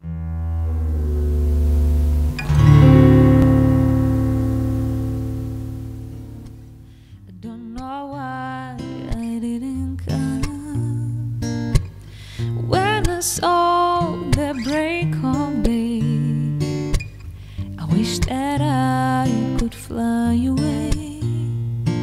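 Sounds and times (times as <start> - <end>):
acoustic guitar chords ringing: 0.0 - 7.2.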